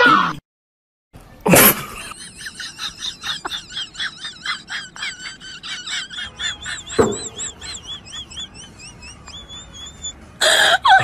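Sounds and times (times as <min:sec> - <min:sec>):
sharp knock: 0:07.0 - 0:07.4.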